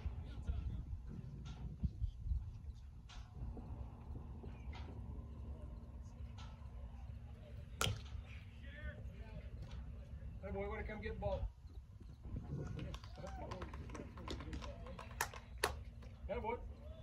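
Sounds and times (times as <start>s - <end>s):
wind rumble on microphone: 0.0s - 7.1s, 8.9s - 14.1s
bat striking baseball: 7.8s - 8.2s.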